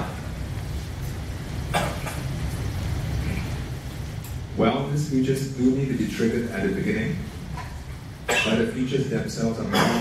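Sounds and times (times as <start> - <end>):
low room rumble: 0.0 - 10.0.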